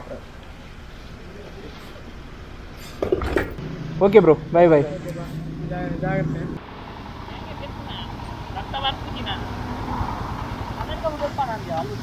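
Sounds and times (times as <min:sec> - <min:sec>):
traffic rumble: 0:00.0 - 0:12.0
people talking: 0:04.0 - 0:06.6, 0:07.3 - 0:09.4, 0:10.8 - 0:12.0.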